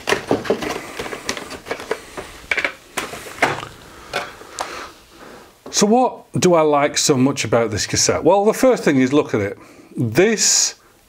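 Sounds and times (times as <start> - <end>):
plastic cassettes clicking and rustling: 0.0 - 4.7.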